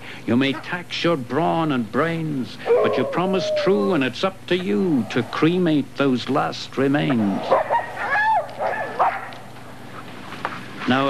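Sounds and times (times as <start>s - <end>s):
dog whining: 2.6s - 4.0s, 7.5s - 9.3s.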